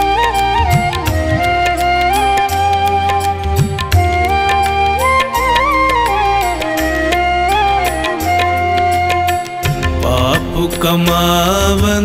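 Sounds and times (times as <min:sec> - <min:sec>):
gliding melody: 0:00.0 - 0:12.0.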